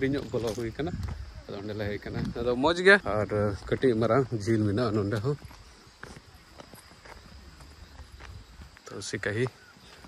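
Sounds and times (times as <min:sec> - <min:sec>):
footsteps on stone path: 0:00.0 - 0:10.0.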